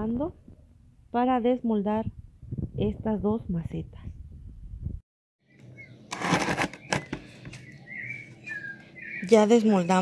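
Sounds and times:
faint bird chirp: 0:05.4 - 0:06.1, 0:06.7 - 0:10.0.

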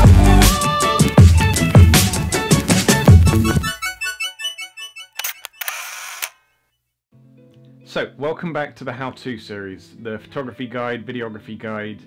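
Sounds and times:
electronic intro tune: 0:01.4 - 0:05.6
camera shutter clicks: 0:05.2 - 0:06.4.

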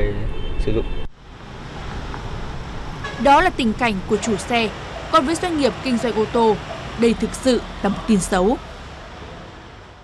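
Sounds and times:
rushing outdoor background noise: 0:00.0 - 0:10.0.

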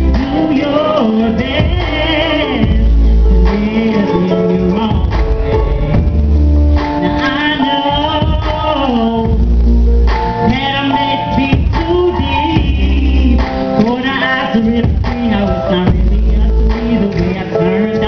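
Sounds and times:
person singing into a microphone: 0:00.0 - 0:06.3, 0:06.9 - 0:09.7, 0:10.4 - 0:18.0
backing track: 0:00.0 - 0:18.0
deep bass note: 0:04.6 - 0:07.2.

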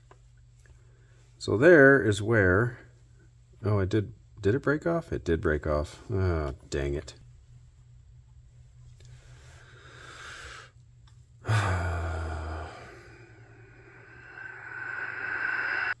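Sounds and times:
soft breaths: 0:00.6 - 0:01.4, 0:08.5 - 0:16.0
man sighing: 0:11.4 - 0:16.0.

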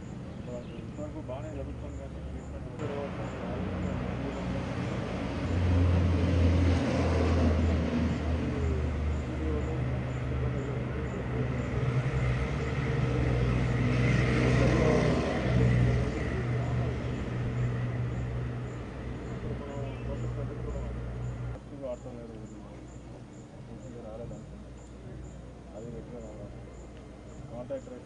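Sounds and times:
indistinct voices: 0:00.0 - 0:06.0, 0:07.6 - 0:28.0
vehicle engine running: 0:00.0 - 0:21.6.

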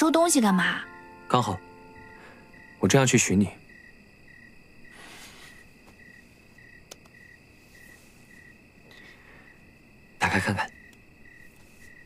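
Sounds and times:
faint cricket chirping: 0:00.0 - 0:12.0.

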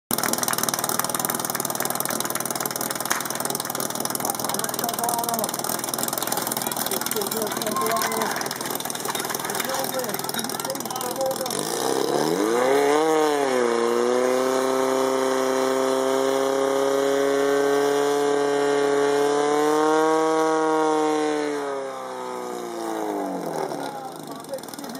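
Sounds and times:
pump engine revving: 0:00.1 - 0:24.9.

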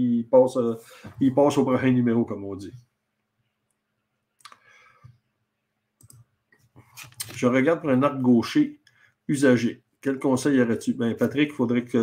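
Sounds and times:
computer mouse clicks: 0:06.0 - 0:07.4.

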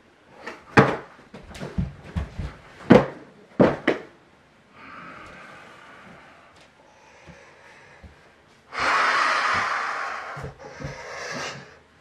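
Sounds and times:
person gasping breathily: 0:04.8 - 0:11.8.

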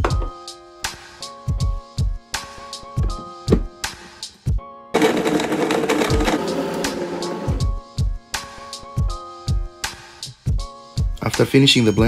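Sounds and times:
background music with steady beat: 0:00.0 - 0:12.0
blender chopping ice in water: 0:05.0 - 0:07.6.

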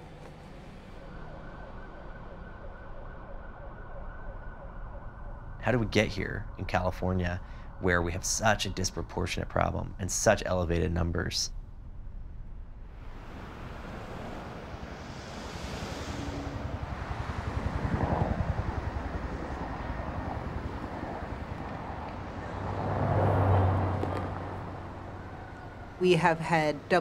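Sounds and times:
traffic background rush: 0:00.0 - 0:27.0
low engine hum: 0:03.5 - 0:27.0
cars passing by: 0:12.8 - 0:27.0.

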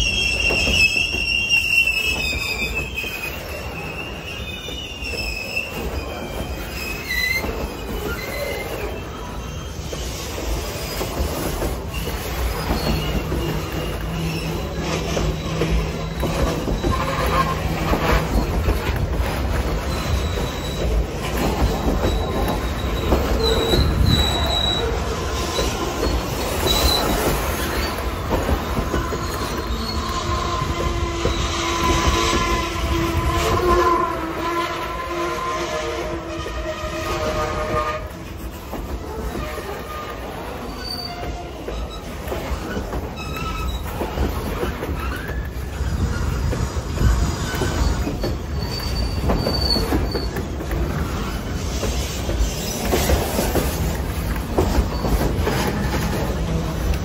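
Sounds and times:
train wheels rumbling and clattering: 0:00.0 - 0:57.0
wheel squeals: 0:00.0 - 0:57.0
train horn chord: 0:30.6 - 0:38.1.

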